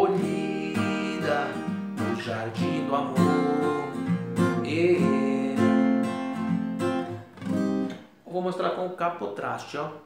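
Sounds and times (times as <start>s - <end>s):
acoustic guitar strumming chords: 0.0s - 8.1s.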